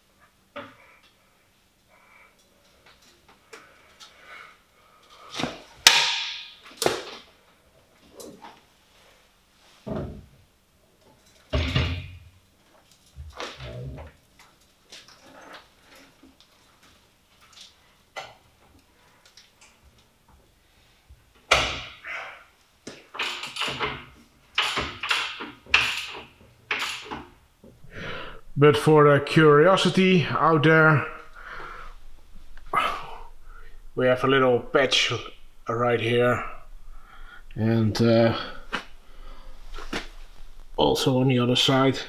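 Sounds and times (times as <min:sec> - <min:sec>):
metal clunks and scrapes: 0:30.7 - 0:40.8.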